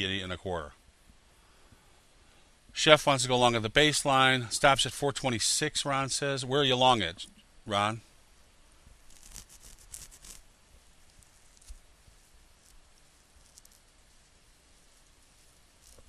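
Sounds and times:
faint scratchy rustling: 2.8s - 16.0s
faint ticks: 12.6s - 13.9s.

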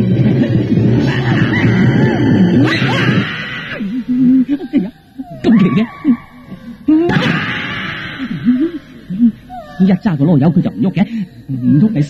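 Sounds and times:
man whimpering: 3.8s - 7.1s, 8.2s - 12.0s.

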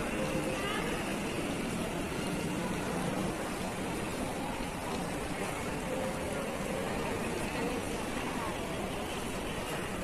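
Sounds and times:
fountain water splashing: 0.0s - 10.0s.

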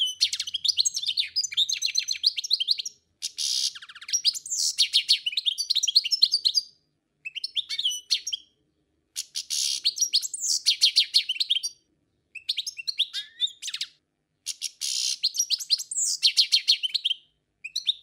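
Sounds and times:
bird chirping: 0.0s - 18.0s.

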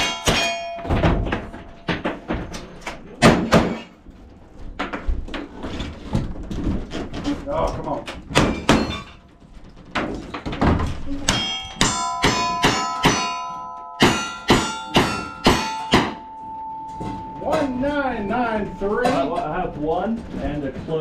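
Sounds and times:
steel targets ringing: 0.0s - 1.9s, 11.3s - 19.5s.

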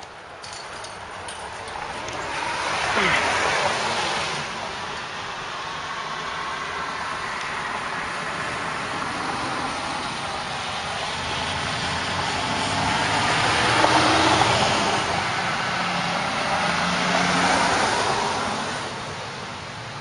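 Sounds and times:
passing road traffic: 0.0s - 20.0s.

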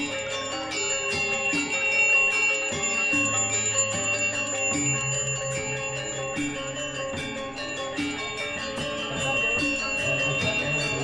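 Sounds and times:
lower melody: 0.0s - 11.0s.

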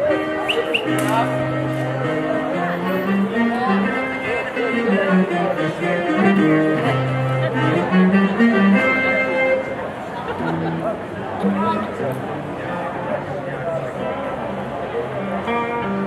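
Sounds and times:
live rock band playing: 0.0s - 11.9s.

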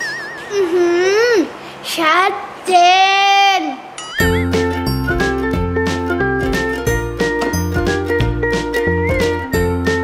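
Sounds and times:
wavering chime sound effect: 0.0s - 0.6s, 4.0s - 4.7s
background music with bass line: 4.2s - 10.0s.

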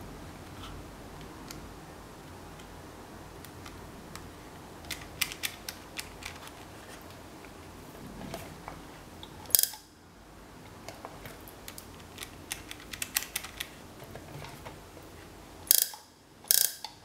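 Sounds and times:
calculator keys clicking: 4.9s - 6.6s, 11.8s - 13.8s.

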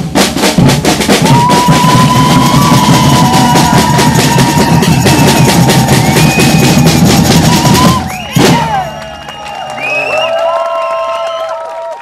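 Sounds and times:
samba drum group playing: 0.0s - 9.2s
crowd cheering and whooping: 1.2s - 12.0s.

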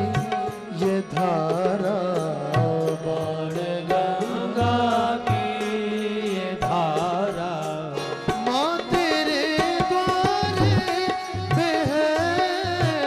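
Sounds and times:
percussion strikes: 0.0s - 13.0s
person singing a hymn: 0.8s - 13.0s.

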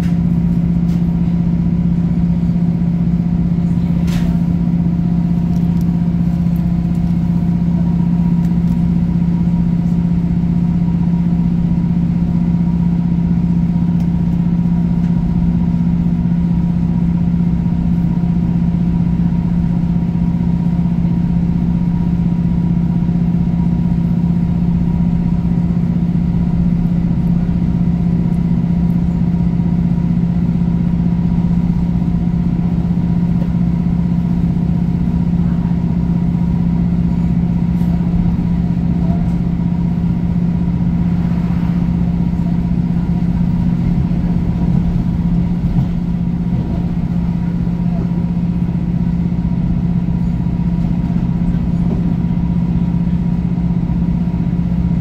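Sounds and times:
diesel train engine droning: 0.0s - 55.0s
train wheels rumbling on track: 0.0s - 55.0s.

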